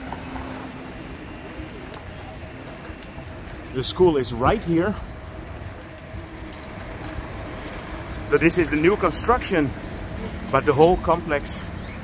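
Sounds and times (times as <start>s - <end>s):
bicycle tyres on road: 0.0s - 12.0s.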